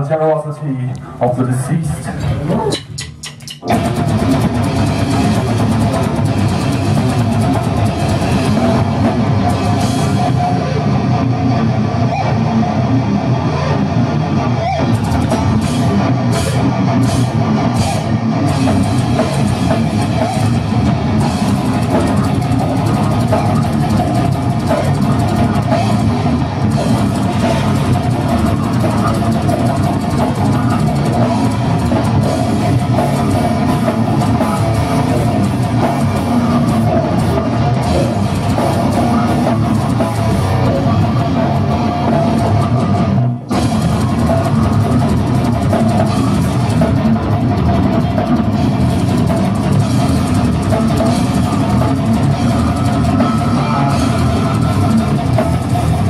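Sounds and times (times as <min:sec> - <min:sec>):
death metal band playing live: 0:00.0 - 0:56.0.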